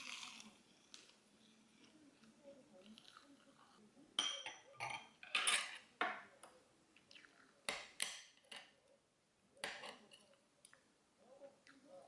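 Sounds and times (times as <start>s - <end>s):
cutlery clinking on ceramic bowls: 4.2s - 6.2s.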